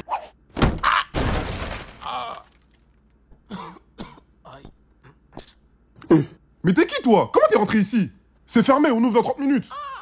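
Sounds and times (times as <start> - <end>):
person coughing: 3.4 - 4.4.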